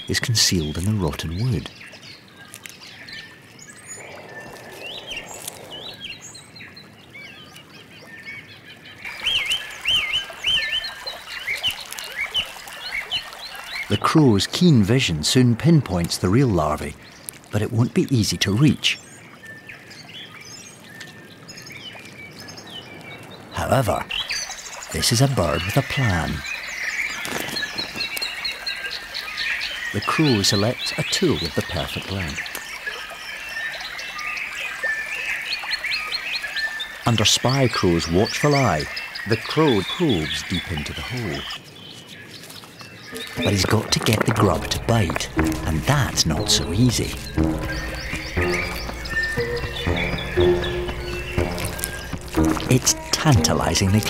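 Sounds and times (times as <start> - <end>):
birds chirping: 0.0 - 54.0
whistled bird calls: 3.1 - 7.6, 9.1 - 14.1, 44.5 - 54.0.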